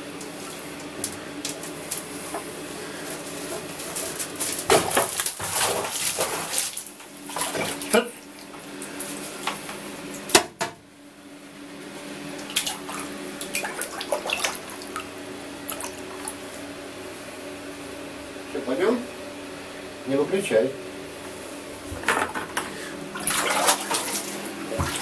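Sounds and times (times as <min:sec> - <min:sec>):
water splashing in plastic tub: 0:04.2 - 0:08.6, 0:12.4 - 0:16.4, 0:23.2 - 0:25.0.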